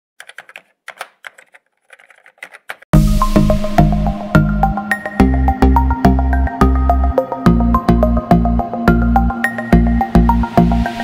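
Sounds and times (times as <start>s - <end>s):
keyboard key clicks: 0.2s - 2.9s.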